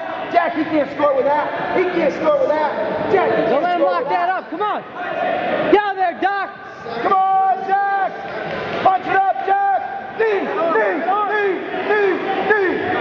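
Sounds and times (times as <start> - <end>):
man yelling: 5.8 - 8.2, 8.9 - 12.9.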